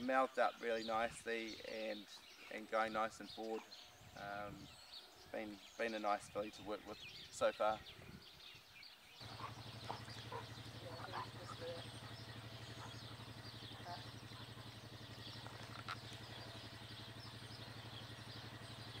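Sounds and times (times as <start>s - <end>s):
birds chirping: 0.0s - 19.0s
engine humming: 9.2s - 19.0s.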